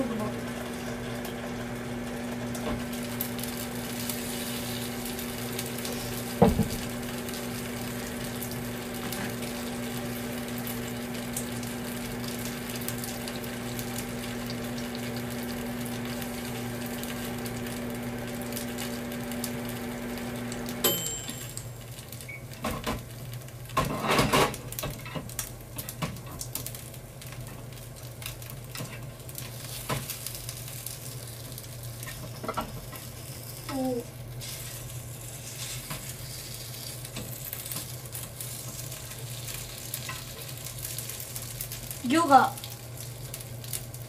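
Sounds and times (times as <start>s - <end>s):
appliance mains hum: 0.0s - 44.0s.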